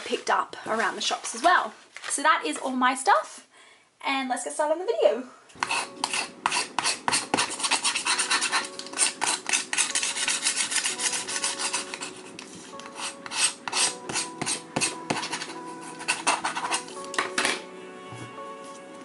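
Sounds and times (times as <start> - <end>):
scratchy rubbing on book cover: 5.6 - 17.0.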